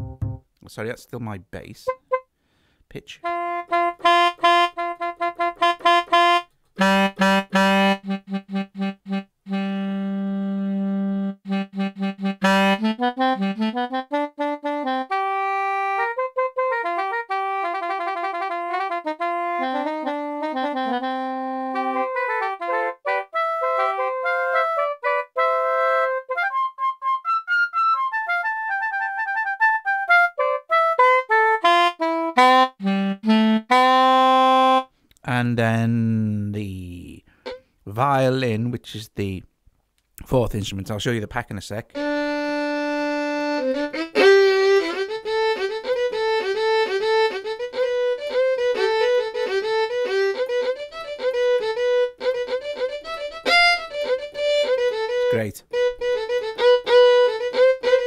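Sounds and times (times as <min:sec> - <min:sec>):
saxophone melody: 0:00.0 - 0:00.4, 0:01.8 - 0:02.3, 0:03.1 - 0:35.0, 0:35.7 - 0:37.7, 0:41.9 - 0:58.0.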